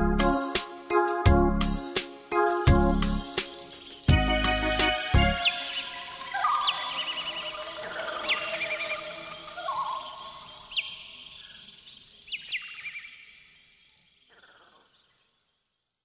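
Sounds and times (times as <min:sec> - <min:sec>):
soft background music: 0:00.0 - 0:07.5
bird chirps: 0:03.1 - 0:15.7.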